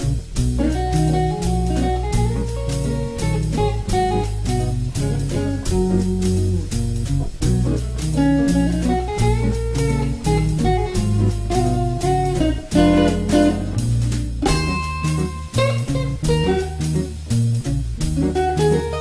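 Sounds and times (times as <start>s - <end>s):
backing bass and drums: 0.0s - 19.0s
electric guitar jazz solo: 0.0s - 19.0s.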